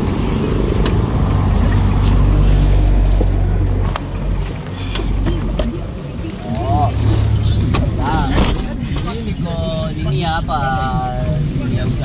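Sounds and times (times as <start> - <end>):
vehicle engine and road rumble: 0.0 - 12.0.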